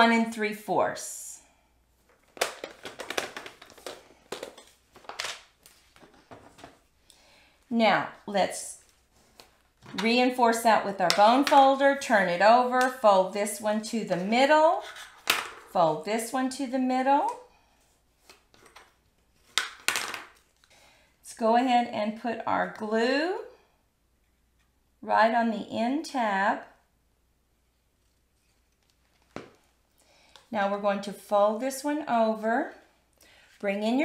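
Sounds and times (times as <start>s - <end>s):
card rustling: 2.0s - 6.9s.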